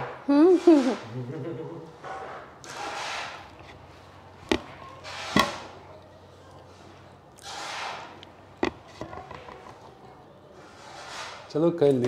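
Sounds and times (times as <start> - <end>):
plate knocking on plastic stool: 4.4 - 4.8, 8.6 - 9.7.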